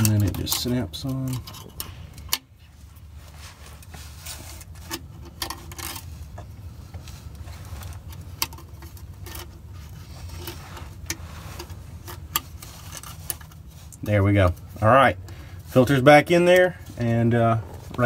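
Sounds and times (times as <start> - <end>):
small clicks and light scrapes: 0.0 - 14.6
steady low rumble: 0.1 - 18.0.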